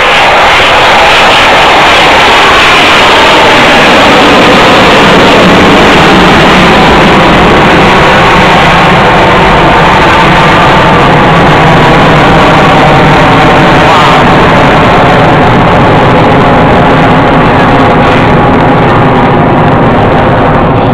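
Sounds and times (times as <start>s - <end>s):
jet aircraft flying low: 0.0s - 20.9s.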